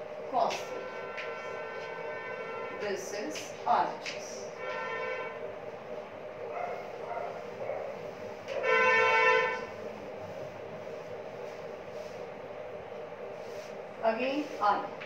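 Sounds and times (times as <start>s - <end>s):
steady drone: 0.0s - 15.0s
horn blasts: 0.5s - 3.1s, 4.4s - 5.5s, 8.5s - 9.8s
duster rubbing chalkboard: 13.3s - 14.9s.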